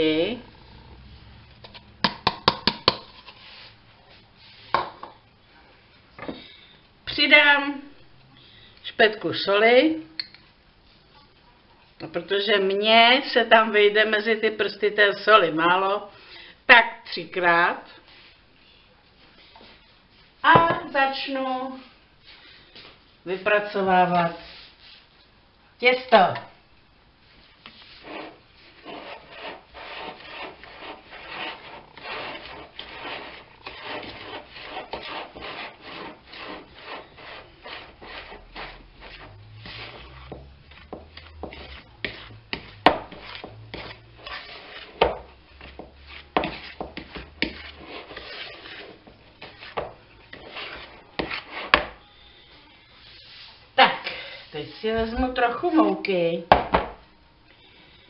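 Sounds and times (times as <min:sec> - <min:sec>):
fork scraping dough in bowl: 0:27.6 - 0:52.0.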